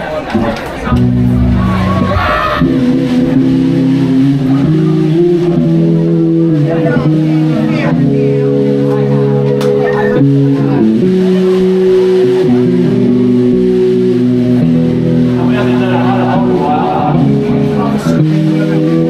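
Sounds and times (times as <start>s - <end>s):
bass guitar: 0.4s - 19.0s
electric guitar chords: 0.8s - 19.0s.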